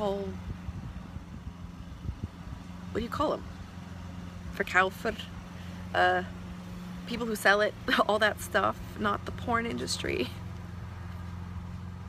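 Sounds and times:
low motor hum: 0:00.0 - 0:12.0.

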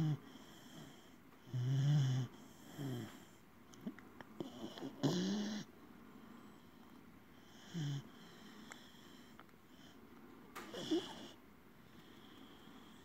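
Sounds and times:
puppy snoring: 0:00.0 - 0:05.7, 0:06.4 - 0:10.0, 0:10.6 - 0:11.4.

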